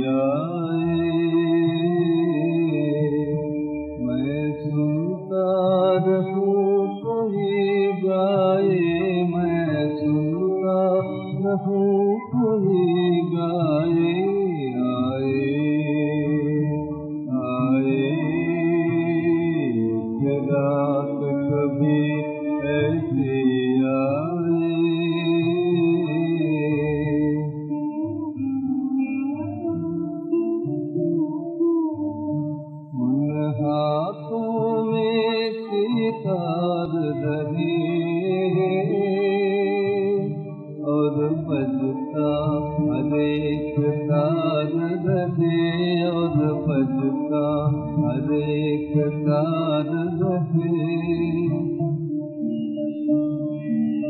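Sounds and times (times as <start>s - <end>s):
muffled old film song recording: 0.0s - 54.0s.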